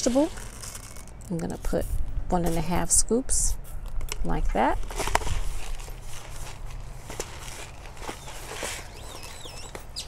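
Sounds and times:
fertilizer scraping and pouring: 0.0 - 1.3.

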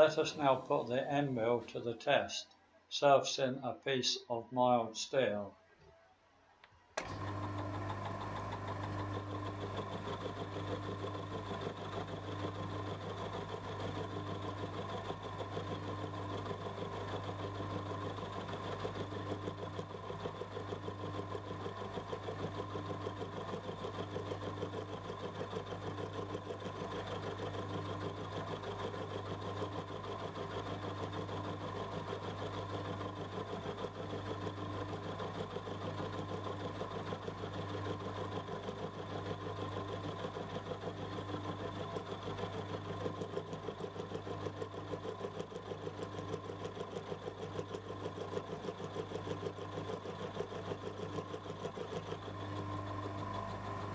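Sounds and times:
milling machine motor hum: 7.0 - 53.9.

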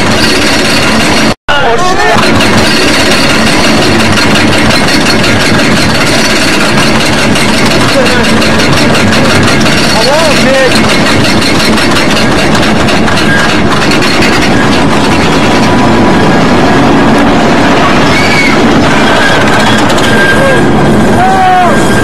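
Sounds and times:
roller coaster rumbling on track: 0.0 - 22.0
riders crying out: 17.7 - 22.0.

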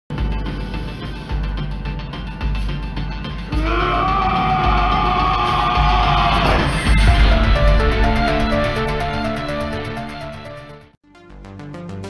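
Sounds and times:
heavy rock music: 0.1 - 10.9
man screaming: 3.5 - 6.8.

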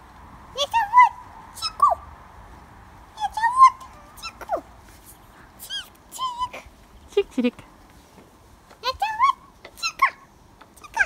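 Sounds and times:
child making bird-like chirps: 5.6 - 6.7.

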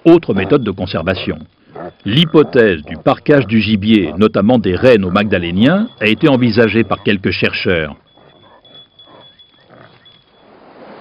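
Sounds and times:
reindeer grunting: 0.0 - 10.3
steady outdoor hiss: 0.0 - 11.0.

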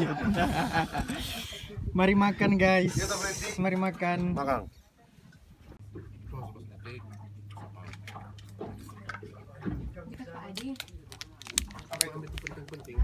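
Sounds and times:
foil wrapper crinkling: 10.6 - 13.0.

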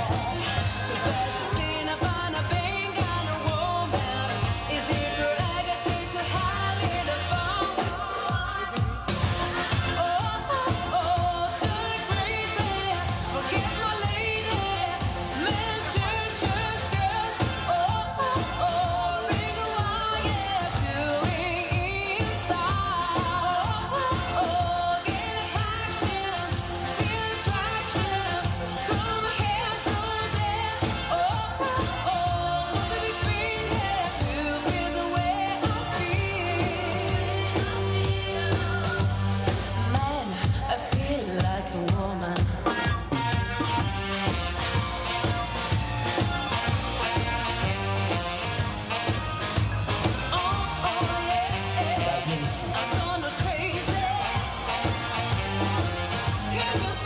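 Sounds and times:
woman singing into a microphone: 0.0 - 44.4, 50.0 - 57.0
band playing a steady beat: 0.0 - 57.0.

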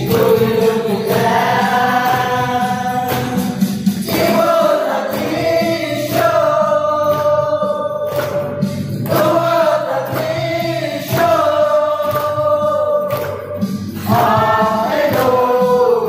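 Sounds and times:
acoustic guitar: 0.0 - 16.0
group of young voices singing: 0.0 - 16.0
hand clapping: 0.0 - 16.0.

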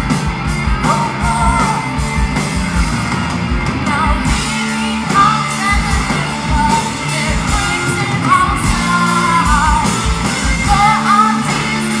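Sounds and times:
distorted guitar: 0.0 - 12.0
drum beat with cymbals: 0.0 - 12.0
keyboard: 0.0 - 12.0
woman singing: 0.8 - 1.8, 3.8 - 12.0.

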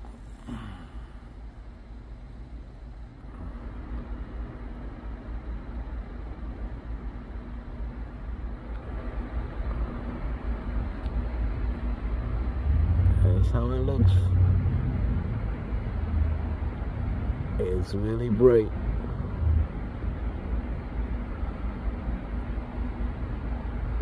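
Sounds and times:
faint hum: 0.0 - 24.0
low outdoor rumble: 0.0 - 24.0.

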